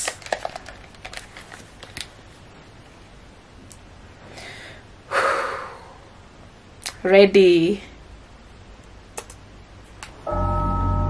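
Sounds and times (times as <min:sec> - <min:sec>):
headphones clicking and knocking: 0:00.0 - 0:02.1, 0:09.2 - 0:09.4.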